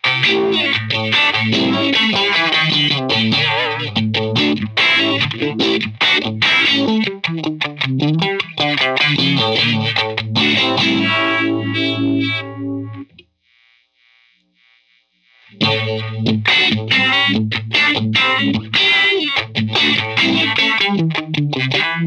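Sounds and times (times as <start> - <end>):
electric guitar with phaser: 0.0 - 13.2, 15.4 - 22.0.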